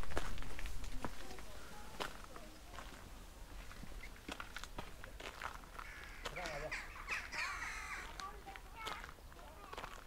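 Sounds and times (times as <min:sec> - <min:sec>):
footsteps on gravel: 0:00.0 - 0:10.0
loud pitch-bending calls: 0:05.8 - 0:08.2.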